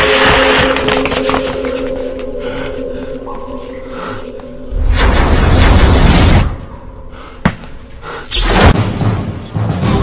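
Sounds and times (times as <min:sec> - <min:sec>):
film music with held tones: 0:00.0 - 0:10.0.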